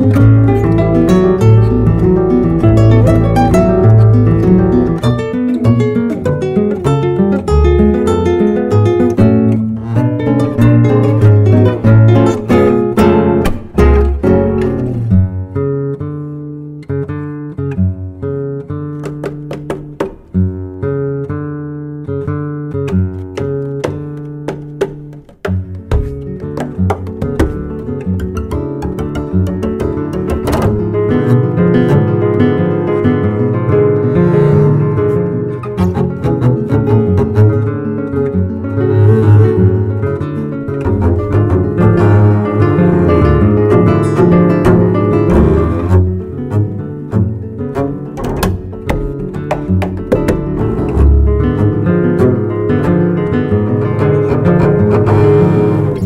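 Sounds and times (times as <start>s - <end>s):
acoustic guitar music: 0.0s - 56.0s.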